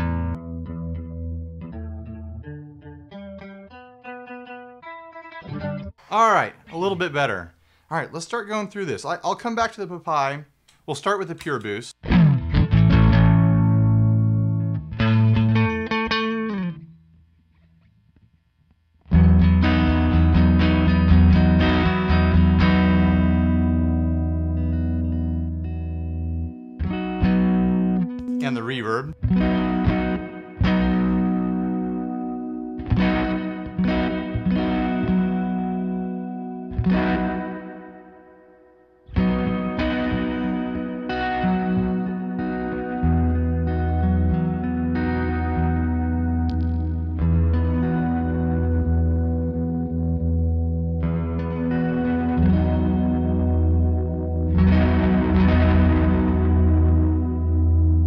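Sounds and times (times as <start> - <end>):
electric guitar strumming chords: 0.0 - 7.3, 12.0 - 16.9, 19.1 - 58.0.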